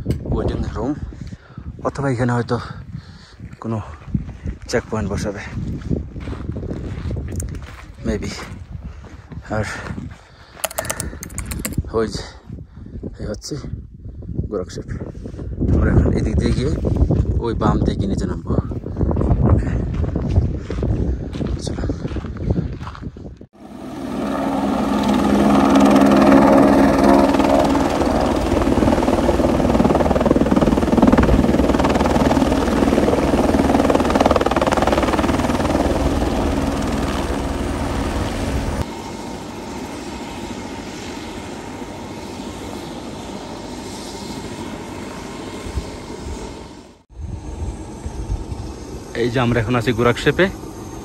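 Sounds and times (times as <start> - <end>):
helicopter rotor and engine: 6.0 - 12.2, 23.6 - 51.0.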